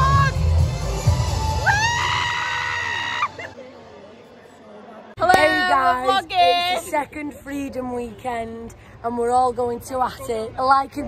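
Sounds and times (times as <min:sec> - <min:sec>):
faint background noise: 0:02.8 - 0:11.0.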